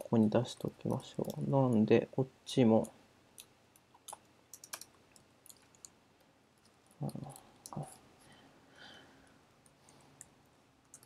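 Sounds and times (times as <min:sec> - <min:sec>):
keyboard keys typing: 0:02.8 - 0:06.0, 0:06.9 - 0:08.0, 0:10.2 - 0:11.0.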